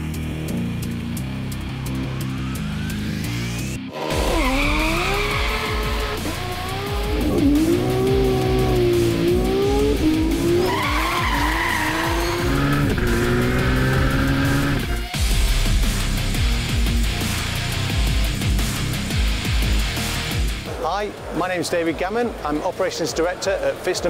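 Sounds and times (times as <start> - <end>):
rock music: 0.0 - 21.4
car engine accelerating: 3.9 - 15.1.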